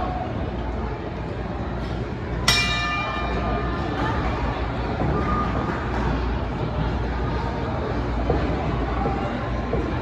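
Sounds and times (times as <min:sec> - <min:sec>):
crowd noise in a hall: 0:00.0 - 0:10.0
boxing ring bell ringing: 0:02.4 - 0:04.0.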